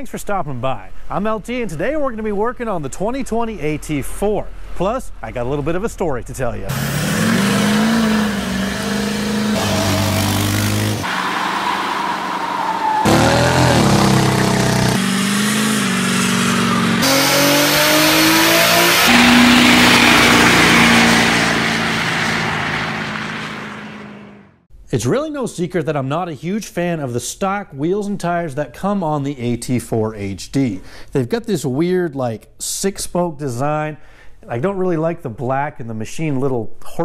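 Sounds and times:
tires spinning in a burnout: 0:06.7 - 0:24.5
truck engines revving: 0:06.7 - 0:24.6.

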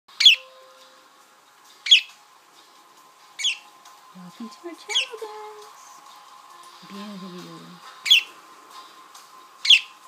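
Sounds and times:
budgerigar high-pitched calls: 0:00.1 - 0:00.5, 0:01.9 - 0:02.1, 0:03.4 - 0:03.7, 0:08.0 - 0:08.3, 0:09.6 - 0:10.0.

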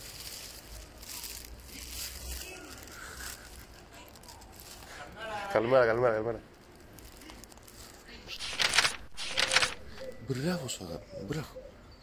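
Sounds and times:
crackling rustling on microphone: 0:00.0 - 0:10.2
outdoor street background: 0:00.0 - 0:12.0.

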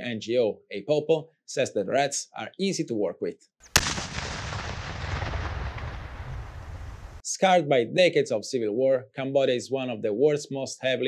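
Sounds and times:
rolling rumble of explosion: 0:03.7 - 0:07.2.

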